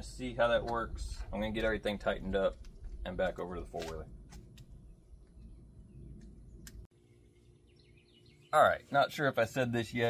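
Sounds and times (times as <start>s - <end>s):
low rumble: 0.0s - 6.9s.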